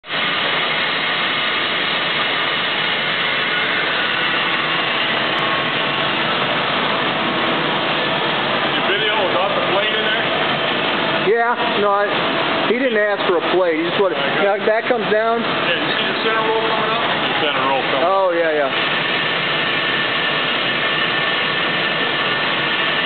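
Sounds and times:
machine whirring: 0:00.0 - 0:23.0.

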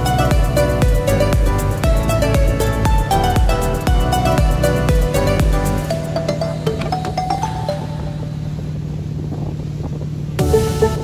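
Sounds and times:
boat engine humming: 0:00.0 - 0:11.0
wind noise on microphone: 0:06.6 - 0:11.0.

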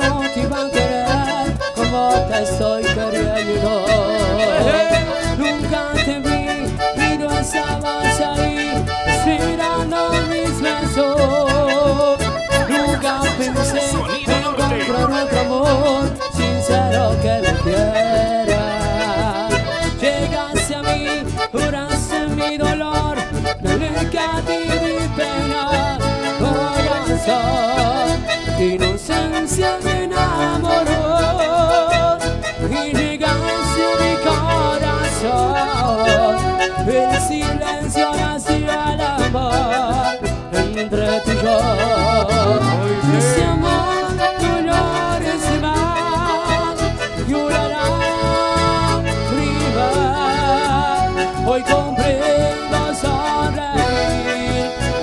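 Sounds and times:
accordion melody: 0:00.0 - 0:55.0
acoustic and electric guitar: 0:00.0 - 0:55.0.

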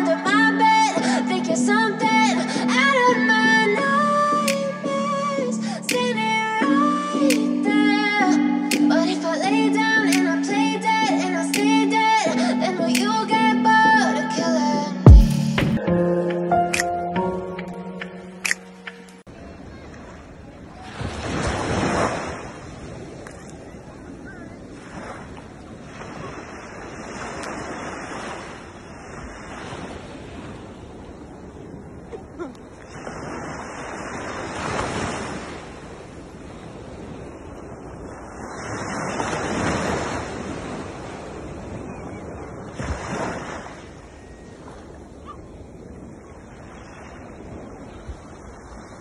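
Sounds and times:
surf waves breaking on beach: 0:00.0 - 0:14.6, 0:19.3 - 0:49.0.

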